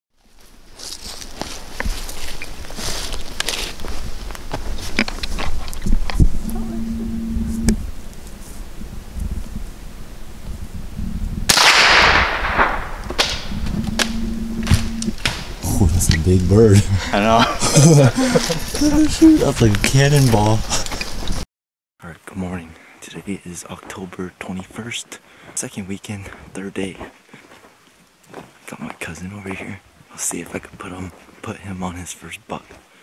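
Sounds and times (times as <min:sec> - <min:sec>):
footsteps on frosty ground: 0:00.2 - 0:09.4, 0:23.1 - 0:31.6.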